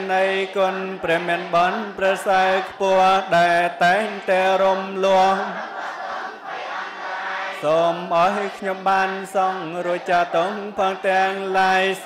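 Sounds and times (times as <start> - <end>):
person chanting into a microphone: 0.0 - 5.6, 7.6 - 12.0.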